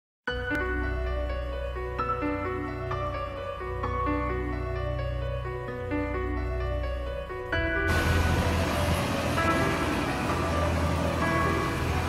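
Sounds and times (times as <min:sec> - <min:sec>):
soft background music: 0:00.3 - 0:12.0
bus driving away: 0:07.9 - 0:12.0
city street traffic: 0:07.9 - 0:12.0.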